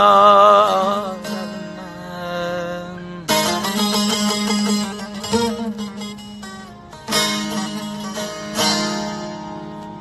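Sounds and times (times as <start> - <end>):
lute drone string: 0.0 - 10.0
lute plucked and strummed: 0.0 - 10.0.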